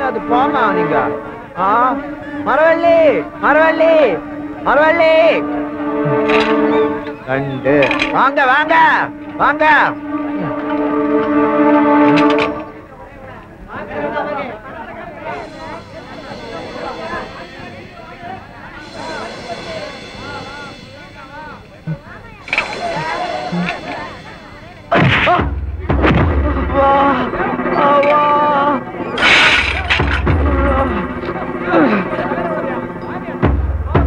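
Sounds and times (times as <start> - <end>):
held horn-like musical note: 0.0 - 12.8, 15.2 - 25.5.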